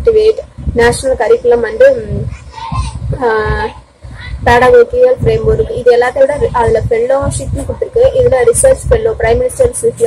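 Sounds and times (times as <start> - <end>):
woman talking: 0.0 - 2.3, 3.0 - 10.0.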